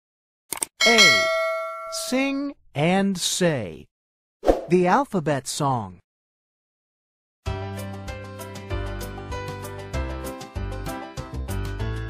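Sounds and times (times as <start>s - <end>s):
bell-like chime ringing: 0.8s - 2.3s
recorded voice speaking: 0.8s - 3.9s, 4.6s - 6.0s.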